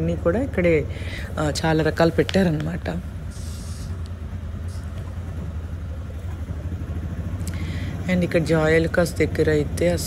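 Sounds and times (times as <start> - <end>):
auto-rickshaw engine droning: 0.0 - 10.0
road noise: 0.0 - 10.0.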